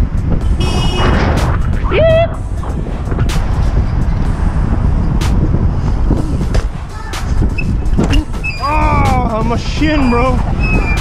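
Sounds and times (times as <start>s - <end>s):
wind on microphone: 0.0s - 11.0s
person shouting: 1.9s - 2.4s
bike clicks and knocks: 7.3s - 8.5s.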